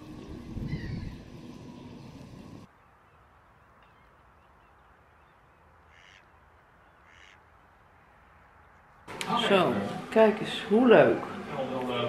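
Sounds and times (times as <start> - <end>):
faint bird calls: 0.6 - 7.6.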